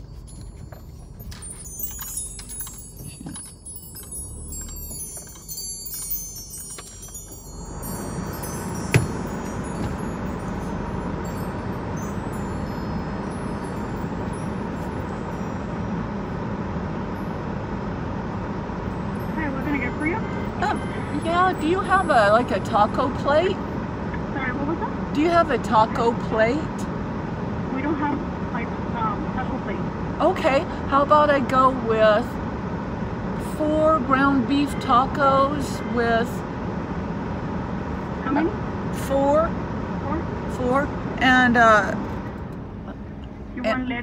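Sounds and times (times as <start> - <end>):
light metallic tinkling: 0.0 - 17.8, 18.8 - 23.6
rush of outside noise: 0.0 - 44.0.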